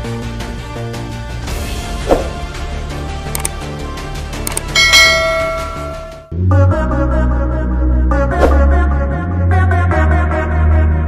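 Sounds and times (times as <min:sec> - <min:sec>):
background music: 0:00.0 - 0:11.0
bright bell ding: 0:04.7 - 0:06.2.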